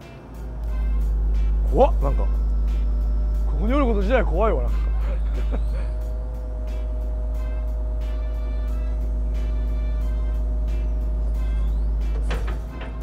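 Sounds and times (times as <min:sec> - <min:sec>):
background music with steady beat: 0:00.0 - 0:13.0
diesel engine rumbling: 0:00.0 - 0:13.0
hydraulic whine: 0:00.0 - 0:13.0.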